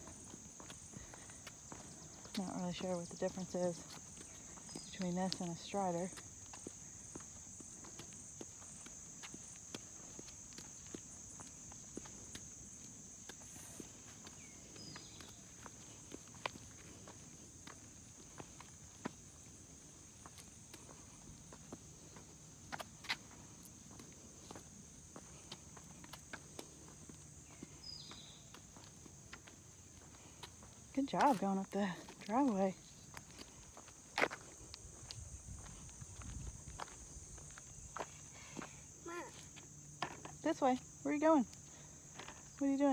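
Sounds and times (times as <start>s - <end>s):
soft footsteps on concrete: 0.0s - 42.9s
high insect buzz: 3.2s - 30.9s.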